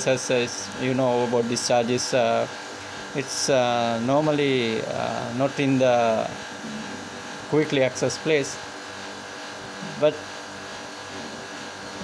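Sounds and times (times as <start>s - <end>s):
machinery hum: 0.0s - 12.0s.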